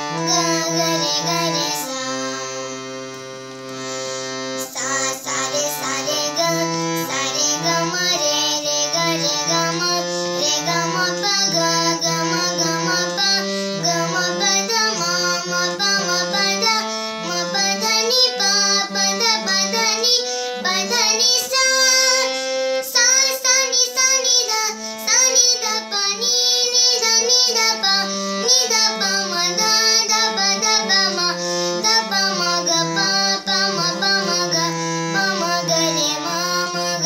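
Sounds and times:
girl singing: 0:00.0 - 0:02.9, 0:04.3 - 0:37.0
harmonium chords: 0:00.0 - 0:37.0.

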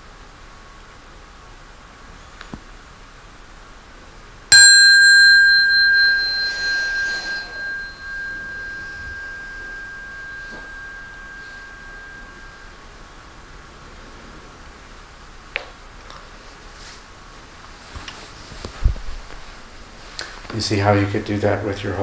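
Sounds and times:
meditation bell ringing: 0:04.5 - 0:13.3.

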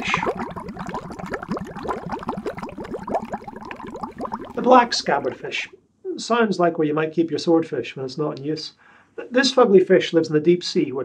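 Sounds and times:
water bubbling: 0:00.0 - 0:05.8.

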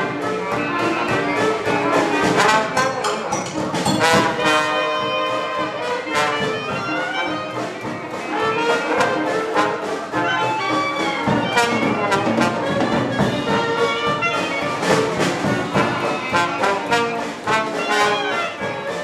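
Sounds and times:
jazz band playing: 0:00.0 - 0:19.0.

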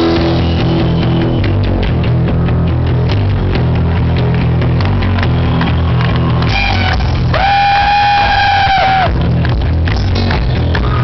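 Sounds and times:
rock band playing: 0:00.0 - 0:11.0.

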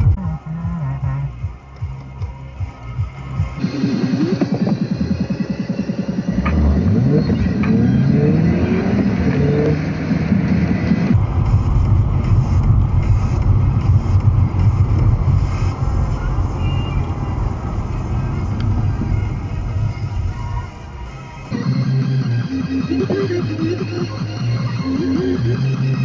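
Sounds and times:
road noise: 0:00.0 - 0:26.0
car engine accelerating through gears: 0:01.3 - 0:26.0.

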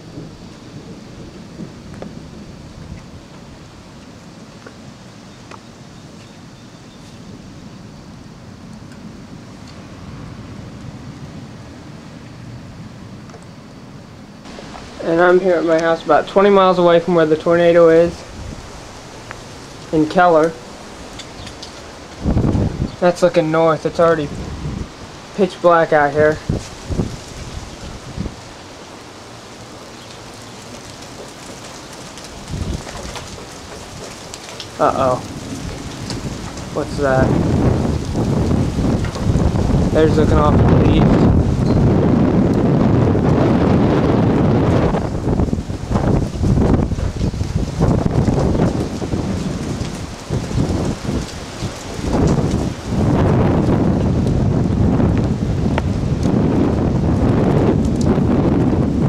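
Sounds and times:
low thunder rumble: 0:00.0 - 0:05.3, 0:07.2 - 0:59.0
heavy rain falling: 0:00.0 - 0:06.5, 0:14.4 - 0:59.0
wind buffeting microphone: 0:00.0 - 0:13.3, 0:13.9 - 0:59.0
storm wind blowing hard: 0:00.0 - 0:59.0.

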